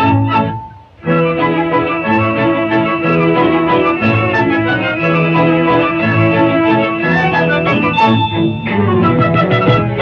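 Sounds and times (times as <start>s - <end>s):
lively instrumental cartoon music: 0.0s - 10.0s.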